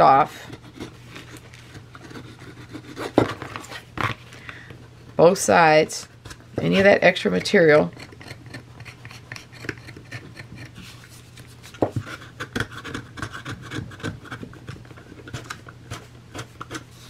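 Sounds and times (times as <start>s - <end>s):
knife blade scraping board: 7.4s - 11.1s.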